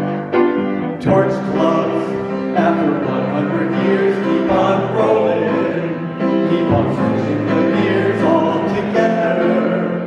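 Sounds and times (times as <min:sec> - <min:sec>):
piano accompaniment: 0:00.0 - 0:10.0
group singing in unison: 0:01.0 - 0:10.0.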